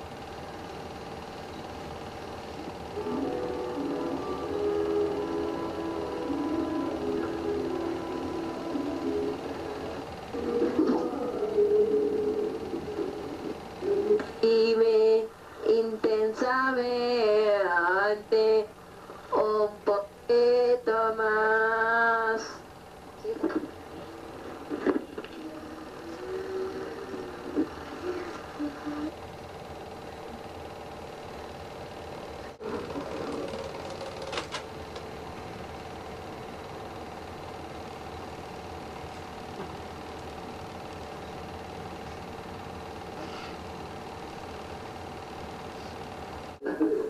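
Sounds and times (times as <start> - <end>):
film projector whirring: 0.0 - 47.0.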